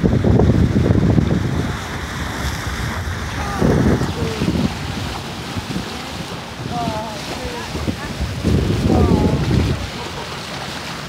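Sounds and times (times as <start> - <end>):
water rushing along boat: 0.0 - 11.0
wind buffeting microphone: 0.0 - 11.0.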